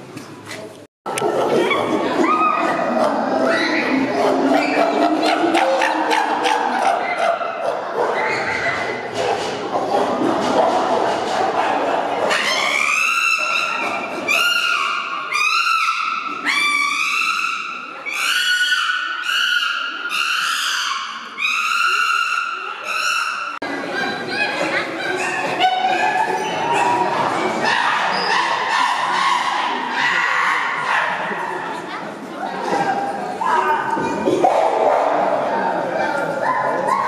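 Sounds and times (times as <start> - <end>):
chimpanzee screams: 12.3 - 23.5.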